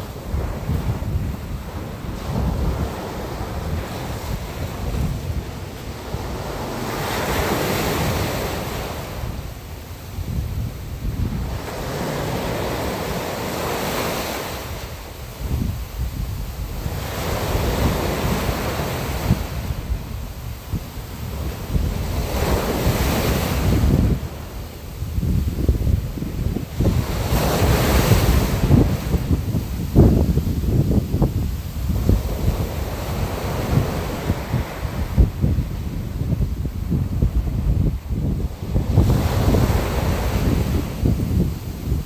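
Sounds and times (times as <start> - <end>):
sea waves: 0.0 - 42.0
wind: 0.0 - 42.0.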